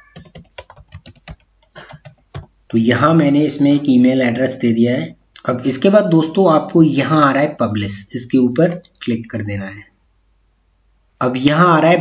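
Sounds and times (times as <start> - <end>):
typing on computer keyboard: 0.0 - 2.5.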